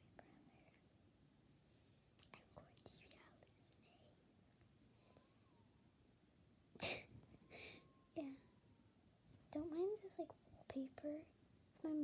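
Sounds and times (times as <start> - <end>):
soft breathy sound: 1.5 - 5.8, 6.8 - 8.6.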